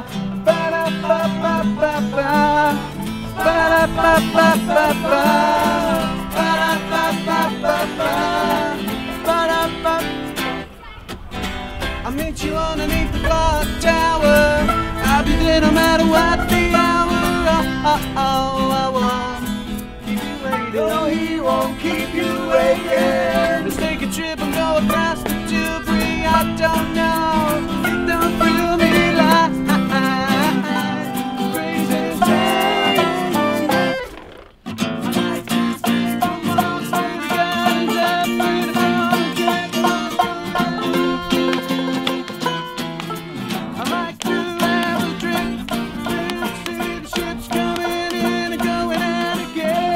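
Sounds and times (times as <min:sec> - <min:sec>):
accordion melody: 0:00.0 - 0:10.7, 0:14.2 - 0:49.9
plucked string instrument: 0:00.0 - 0:49.9
strummed acoustic guitars: 0:00.0 - 0:49.9.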